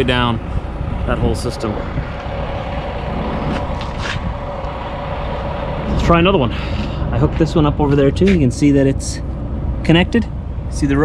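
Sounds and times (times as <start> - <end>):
engine rumbling and humming: 0.0 - 11.0.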